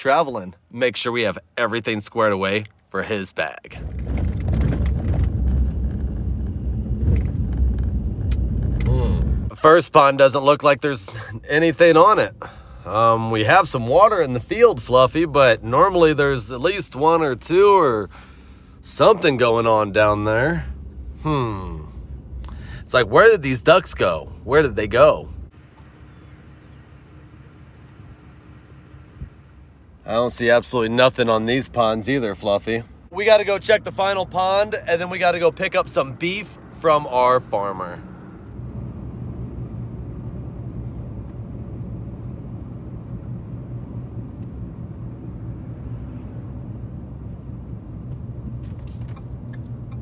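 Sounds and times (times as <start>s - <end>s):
road noise: 0.0s - 50.0s
vehicle engine rumble: 0.0s - 50.0s.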